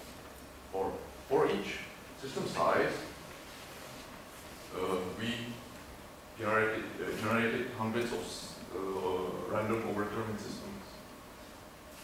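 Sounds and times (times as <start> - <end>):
lecture hall room tone: 0.0 - 12.0
man speaking: 0.7 - 3.2, 4.7 - 5.7, 6.4 - 11.1.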